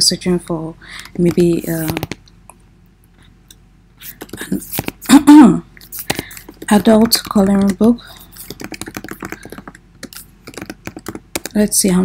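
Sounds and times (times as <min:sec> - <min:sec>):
typing on computer keyboard: 0:05.9 - 0:11.7.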